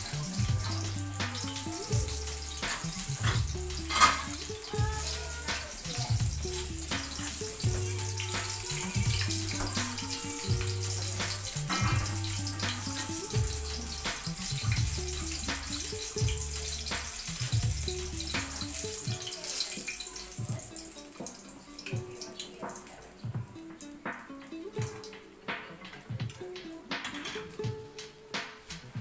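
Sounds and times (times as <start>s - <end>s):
background music with bass line: 0.0s - 22.3s, 23.2s - 29.0s
pork frying in oil: 0.0s - 29.0s.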